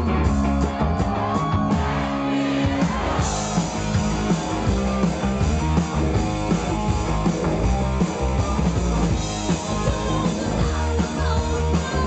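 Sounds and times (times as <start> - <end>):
rock band playing loud: 0.0 - 12.0.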